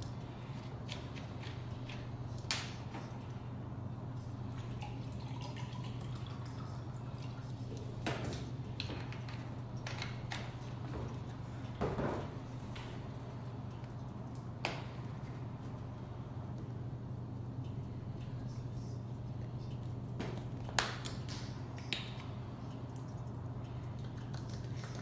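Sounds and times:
steady low hum: 0.0s - 25.0s
liquid pouring into a cup: 4.6s - 8.0s.

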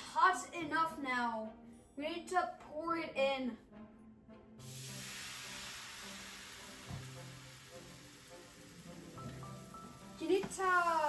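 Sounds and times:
batter sizzling on hot pan: 4.6s - 11.0s.

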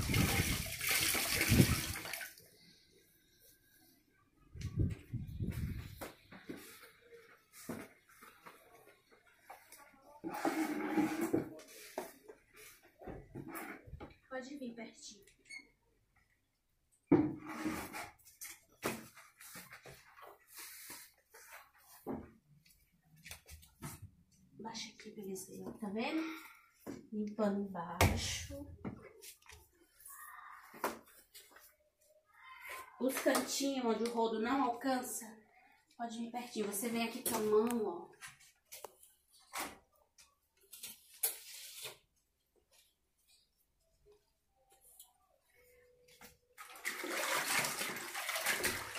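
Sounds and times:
squeegee scraping on tiles: 10.2s - 11.6s, 17.4s - 18.3s
cloth wiping floor: 19.1s - 22.1s.

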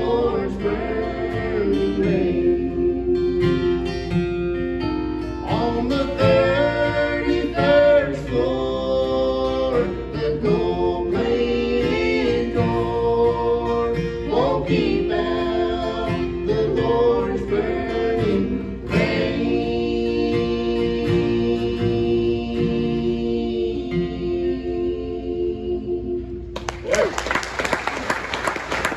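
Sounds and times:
voices singing in harmony: 0.0s - 4.2s, 5.4s - 26.5s
strummed acoustic guitars: 0.0s - 26.6s.

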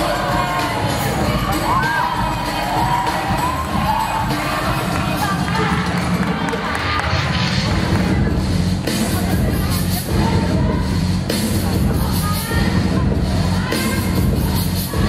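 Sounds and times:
audience cheering and shouting: 0.0s - 15.0s
loud dance music: 0.0s - 15.0s.

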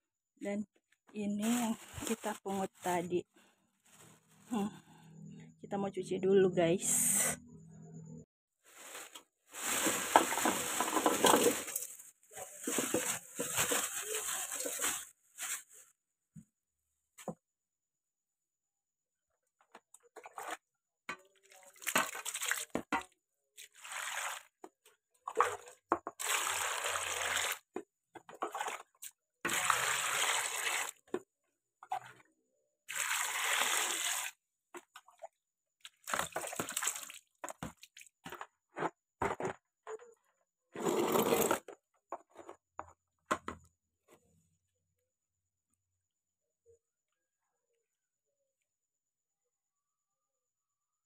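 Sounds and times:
water splashing and sloshing: 8.7s - 15.6s, 20.0s - 27.6s, 28.2s - 31.2s, 32.9s - 38.4s
water pouring into a basin: 21.4s - 22.8s, 23.6s - 24.6s, 25.3s - 27.6s, 29.5s - 31.0s, 32.9s - 34.4s, 35.9s - 37.3s.

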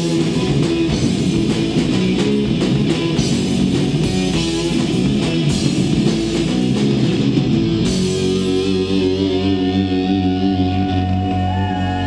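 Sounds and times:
rock band playing loud: 0.0s - 12.0s
high guitar note wavering: 4.0s - 11.4s.

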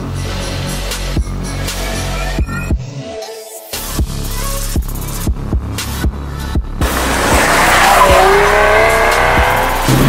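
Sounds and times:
background music: 0.0s - 10.0s
car engine accelerating: 6.8s - 10.0s.

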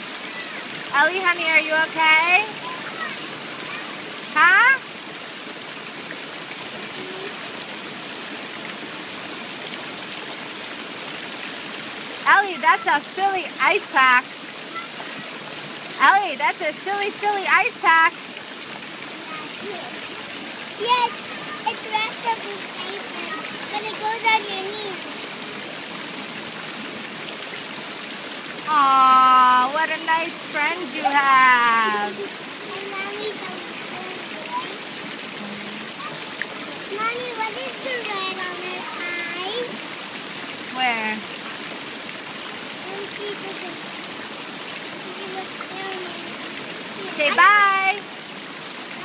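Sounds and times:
running water rushing: 0.0s - 49.0s.

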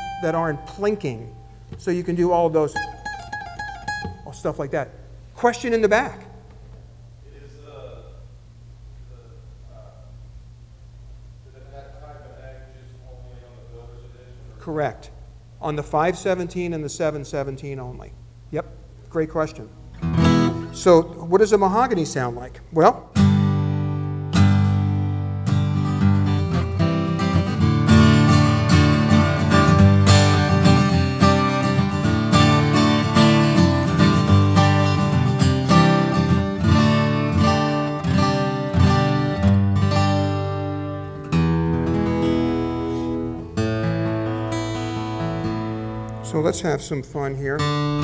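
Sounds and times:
acoustic guitar strummed and picked: 0.0s - 4.6s, 19.8s - 21.0s, 23.1s - 46.5s, 47.6s - 48.0s.

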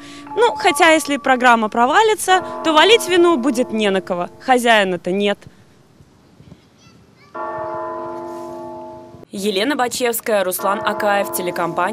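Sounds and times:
bell ringing: 0.0s - 5.2s.

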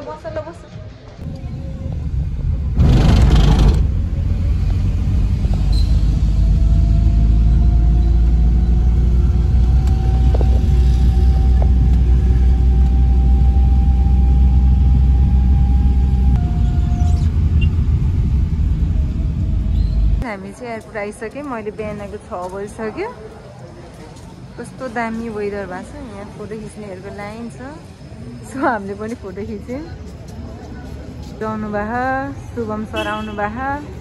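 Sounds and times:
car road and engine rumble: 1.2s - 20.2s
loud rush: 2.4s - 4.5s
faint rising whine: 9.8s - 20.2s.

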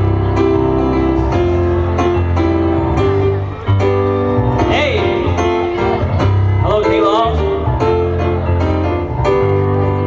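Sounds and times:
grand piano: 0.0s - 10.0s.

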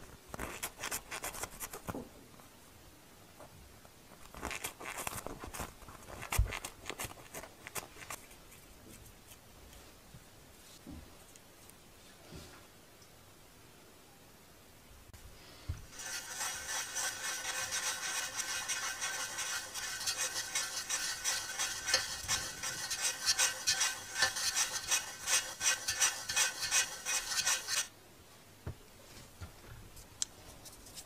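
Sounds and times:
scratchy rasping rubbing: 0.4s - 1.8s, 4.3s - 8.4s, 15.9s - 27.9s.

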